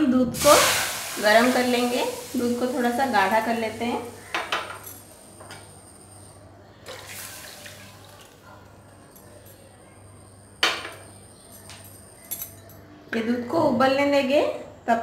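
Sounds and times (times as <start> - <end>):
milk pouring and splashing: 6.9 - 8.4.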